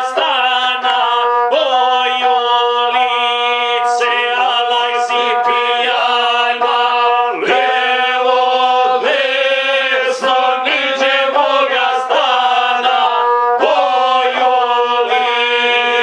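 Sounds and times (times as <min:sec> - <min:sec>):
men singing folk song: 0:00.0 - 0:16.0.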